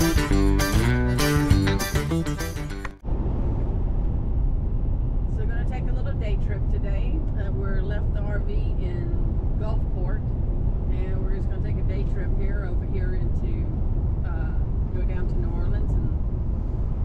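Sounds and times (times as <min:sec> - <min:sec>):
road and engine noise in cab: 0:02.9 - 0:17.0.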